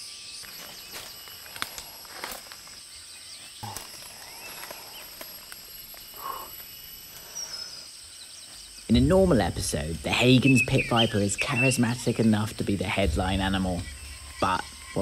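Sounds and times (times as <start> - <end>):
faint chirp: 0.0 - 15.0
insects droning: 0.0 - 15.0
twigs and leaves rustling: 0.0 - 15.0.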